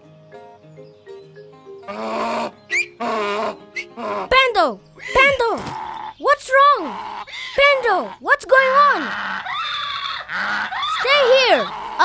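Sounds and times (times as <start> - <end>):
soft background music: 0.0 - 9.4
cartoon donkey braying: 1.9 - 12.0.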